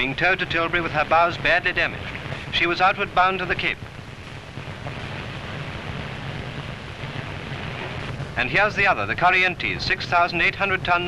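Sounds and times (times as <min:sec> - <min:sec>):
steady rushing noise: 0:00.0 - 0:11.0
low rumble: 0:03.4 - 0:09.2.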